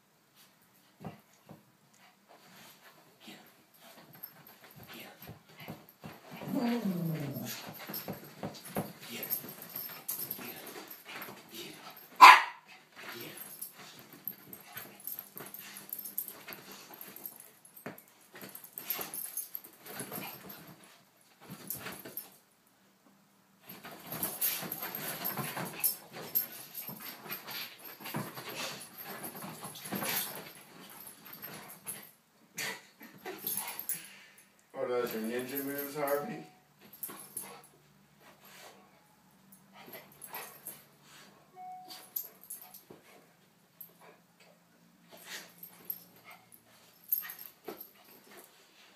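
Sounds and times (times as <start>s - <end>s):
dogs scuffling on cushions: 2.3s - 22.4s, 23.6s - 32.1s
dog barking sharply: 12.2s - 12.6s.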